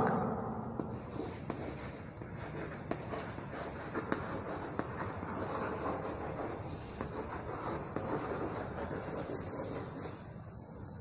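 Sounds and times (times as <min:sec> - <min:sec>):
chalk tapping on a board: 0:00.8 - 0:10.1
chalk scratching on a blackboard: 0:00.8 - 0:10.3.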